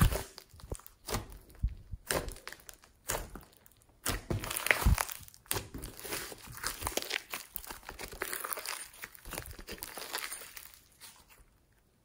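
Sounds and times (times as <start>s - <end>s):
slime crackling and popping: 0.0s - 11.2s.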